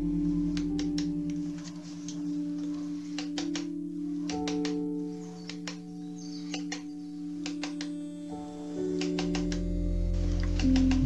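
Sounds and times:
ambient synth music: 0:00.0 - 0:11.0.

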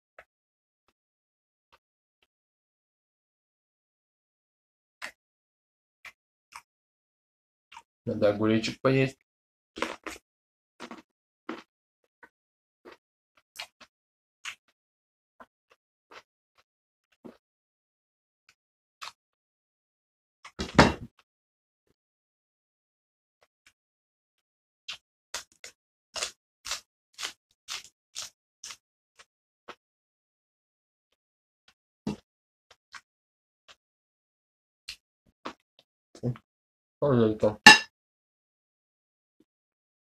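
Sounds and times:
person crunching cucumber: 0:09.8 - 0:10.2, 0:10.8 - 0:11.6, 0:25.4 - 0:28.8.

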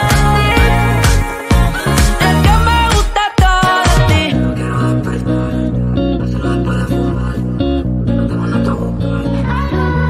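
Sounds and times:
disco-funk pop song: 0:00.0 - 0:10.0
man singing: 0:00.0 - 0:10.0.

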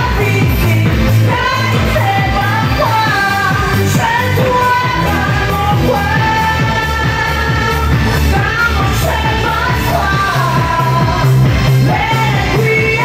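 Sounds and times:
amplified pop backing music: 0:00.0 - 0:13.0
woman singing into microphone: 0:00.0 - 0:13.0.

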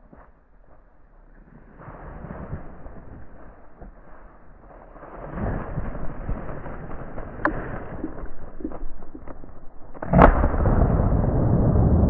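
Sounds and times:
brush rustling: 0:00.0 - 0:09.2.

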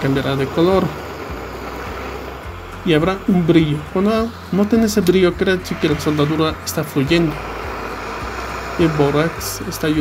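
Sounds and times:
soldering torch hissing: 0:00.0 - 0:10.0.

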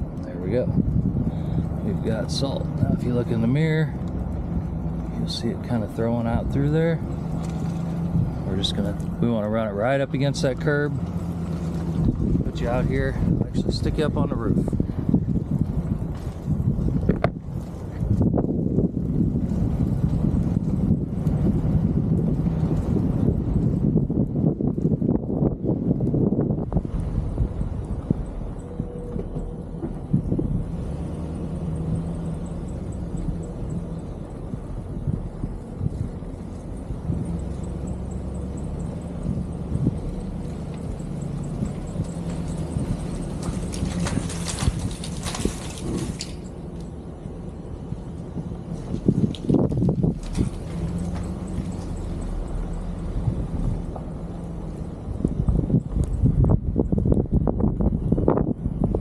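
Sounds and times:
truck engine rumble: 0:00.0 - 0:59.0
wind buffeting microphone: 0:00.0 - 0:59.0.

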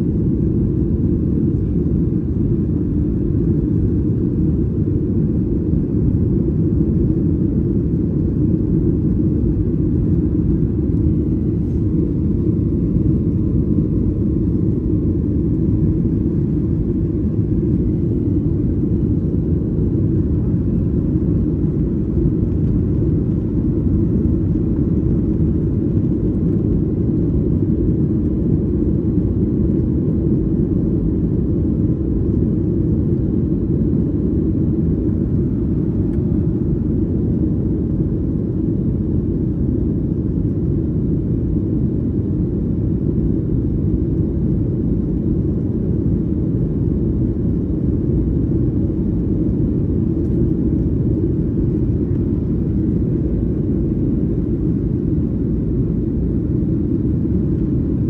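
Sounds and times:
jet airliner cabin noise: 0:00.0 - 0:58.0.

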